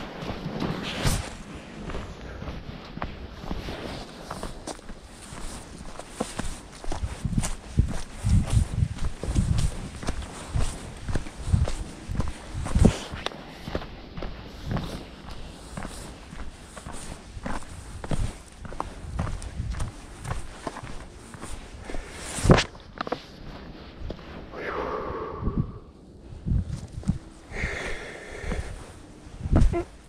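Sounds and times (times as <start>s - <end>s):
footsteps on leaves and rock: 0.0s - 24.5s.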